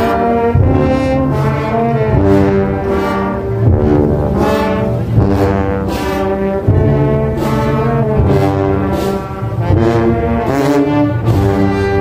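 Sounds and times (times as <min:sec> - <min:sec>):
brass band playing funeral march: 0:00.0 - 0:12.0.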